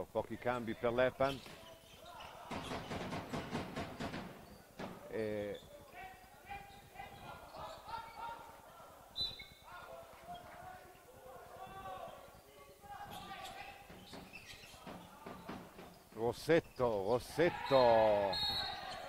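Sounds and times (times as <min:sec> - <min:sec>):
ball bouncing on wooden court: 0:13.0 - 0:16.1.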